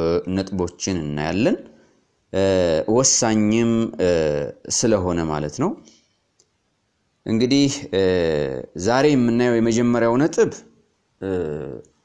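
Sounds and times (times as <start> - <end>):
man lecturing: 0.0 - 6.0, 7.2 - 12.0.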